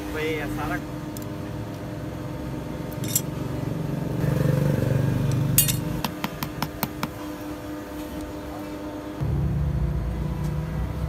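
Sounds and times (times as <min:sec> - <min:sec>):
low hum: 0:09.1 - 0:11.0.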